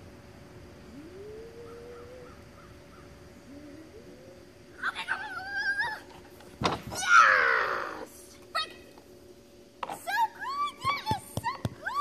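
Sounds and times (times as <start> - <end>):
high wavering call: 0.9 - 5.9
wooden teeter board banging down: 6.6 - 7.0.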